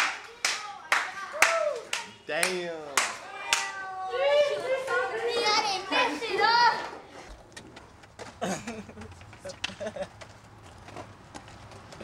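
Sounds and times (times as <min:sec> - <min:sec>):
hand claps: 0:00.0 - 0:03.7.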